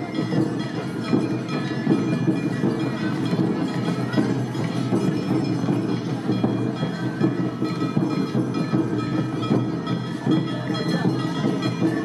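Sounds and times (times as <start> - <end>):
drums beating: 0.0 - 12.0.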